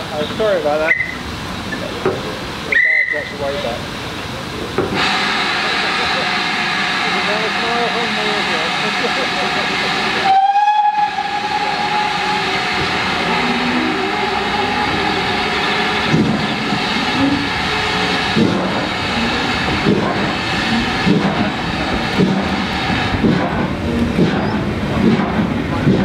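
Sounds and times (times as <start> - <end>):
train rumble and hiss: 0.0 - 26.0
steam locomotive whistle: 2.7 - 3.3, 10.2 - 16.2.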